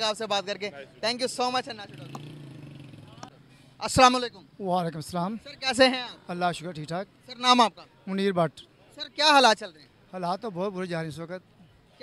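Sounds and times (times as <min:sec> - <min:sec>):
vehicle engine humming: 0:00.0 - 0:07.5
street traffic: 0:00.0 - 0:12.0.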